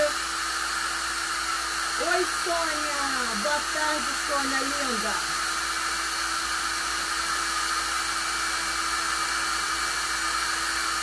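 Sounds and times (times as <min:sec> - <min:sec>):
hair dryer blowing: 0:00.0 - 0:11.0.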